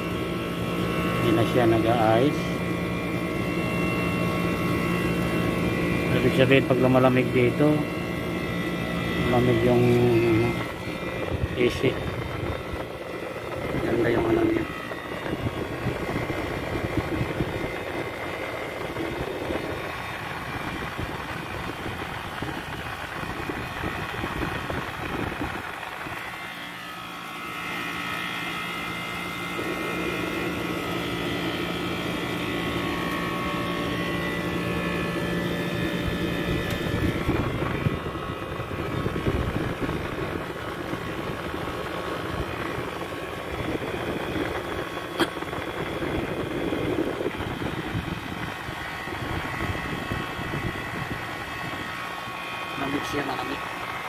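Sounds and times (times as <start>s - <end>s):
air conditioner whirring hum: 0.0s - 54.0s.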